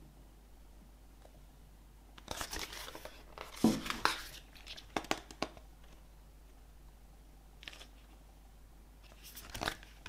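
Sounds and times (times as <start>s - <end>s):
paper pages rustling: 2.2s - 6.0s, 7.6s - 8.2s, 9.0s - 10.0s.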